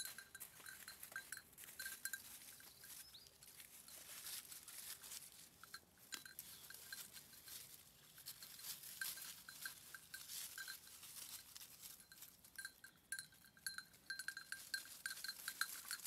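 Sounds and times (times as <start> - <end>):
dry leaves crackling: 0.0 - 12.8, 14.0 - 16.0
goat bell tinkling: 0.0 - 16.0.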